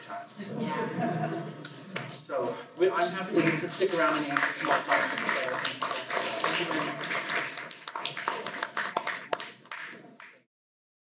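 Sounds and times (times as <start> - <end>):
audience applauding: 3.0 - 10.4.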